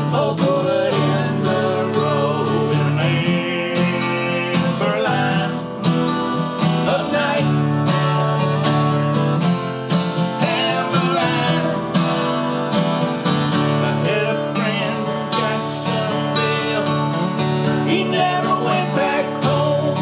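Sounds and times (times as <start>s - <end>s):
men singing: 0.0s - 8.5s, 10.3s - 12.6s, 13.6s - 20.0s
acoustic guitars strumming: 0.0s - 20.0s.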